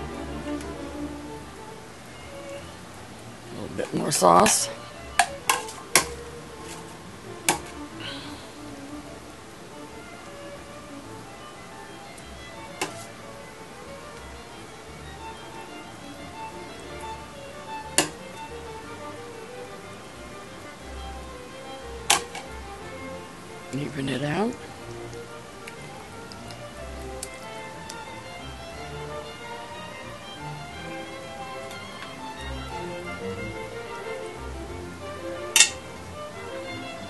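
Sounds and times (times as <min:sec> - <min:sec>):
soft background music: 0:00.0 - 0:37.0.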